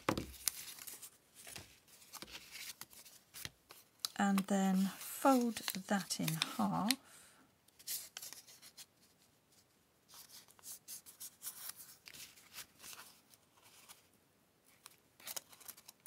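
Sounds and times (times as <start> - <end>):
paper strip rustling: 0.3 - 7.0, 7.8 - 9.1.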